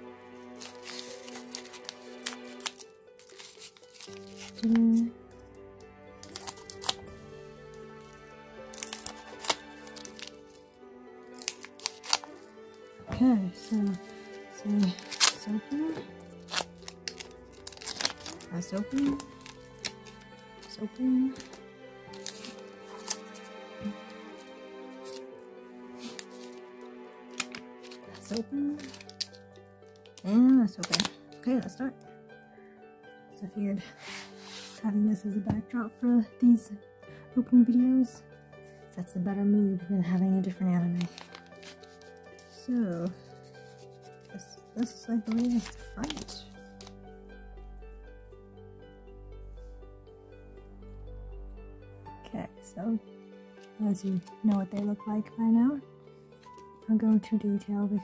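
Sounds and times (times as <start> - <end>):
background music with held tones: 0.0 - 58.0
foil wrappers crinkling: 0.5 - 5.1, 6.2 - 10.6, 11.3 - 25.2, 25.9 - 26.6, 27.3 - 31.7, 40.8 - 47.0
scissors snipping: 6.2 - 7.1, 11.3 - 12.5, 13.6 - 25.3, 27.3 - 31.4.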